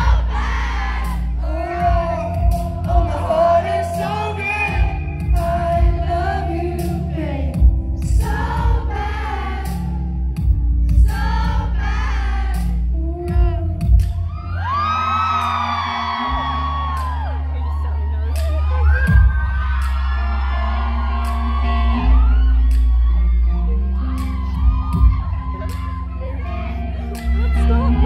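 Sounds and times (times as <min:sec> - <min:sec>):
crowd screaming and cheering: 0:00.0 - 0:28.0.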